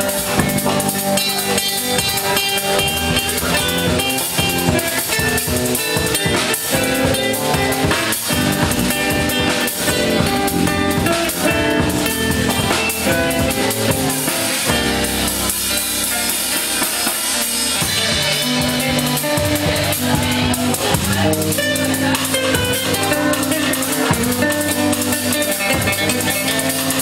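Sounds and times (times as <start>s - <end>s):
acoustic guitar: 0.0s - 27.0s
drum kit steady beat: 0.0s - 27.0s
electric string instrument: 0.0s - 27.0s.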